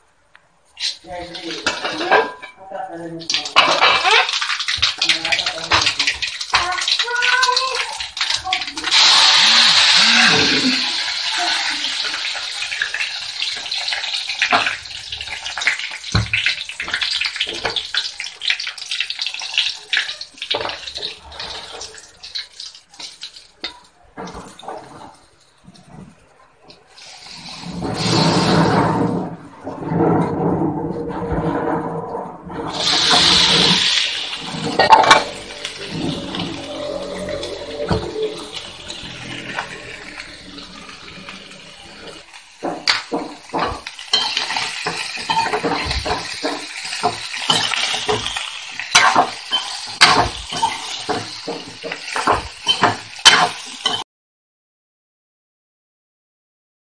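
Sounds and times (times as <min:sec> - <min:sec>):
hot oil sizzling: 0:00.6 - 0:02.5, 0:03.1 - 0:25.4, 0:26.9 - 0:29.2, 0:32.6 - 0:54.0
pots and spoons clinking: 0:01.5 - 0:02.6, 0:03.3 - 0:08.4, 0:32.7 - 0:40.2, 0:41.2 - 0:54.0.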